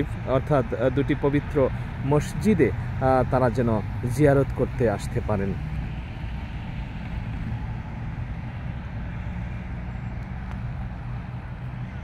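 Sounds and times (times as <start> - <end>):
city road traffic: 0.0 - 12.0.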